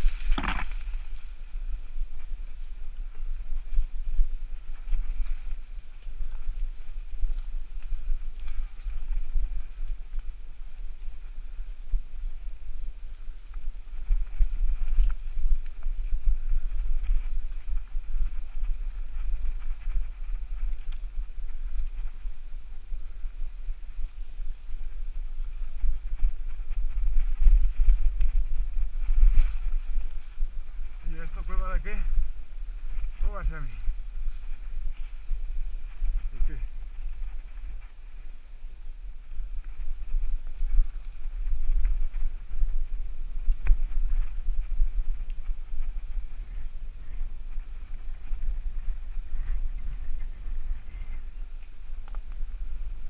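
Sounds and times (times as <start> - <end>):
bike clicks and rattles: 0.0 - 1.2
wind buffeting microphone: 0.0 - 53.0.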